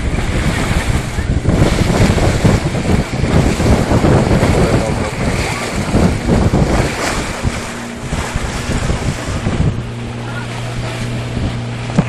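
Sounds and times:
boat engine humming: 0.0s - 12.0s
water rushing past boat: 0.0s - 12.0s
wind buffeting microphone: 0.0s - 12.0s.

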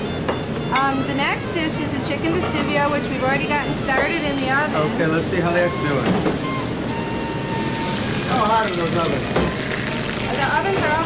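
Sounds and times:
ovens and ventilation rushing: 0.0s - 11.0s.

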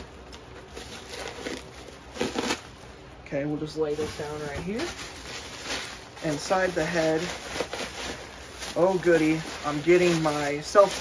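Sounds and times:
plastic packaging crinkling: 0.0s - 2.9s, 3.7s - 11.0s.

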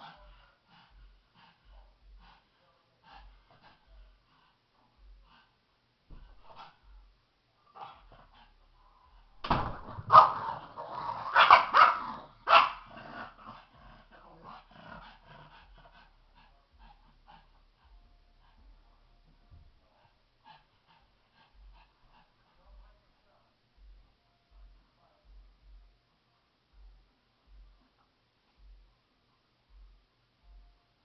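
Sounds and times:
dog barking: 10.0s - 10.6s, 11.3s - 13.0s.

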